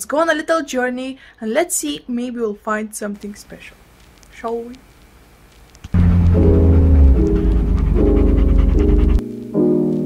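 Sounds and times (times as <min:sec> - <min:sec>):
music of sustained chords: 0:06.0 - 0:09.8
dog panting: 0:06.3 - 0:09.2.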